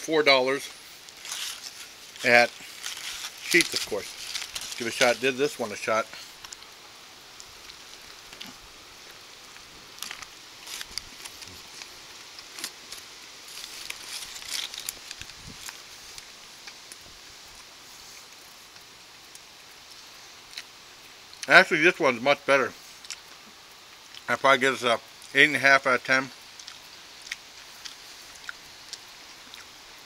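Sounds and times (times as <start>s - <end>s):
foil wrapper crinkling: 0.5s - 6.8s, 9.5s - 17.0s
chewing food: 1.1s - 5.3s, 26.4s - 29.8s.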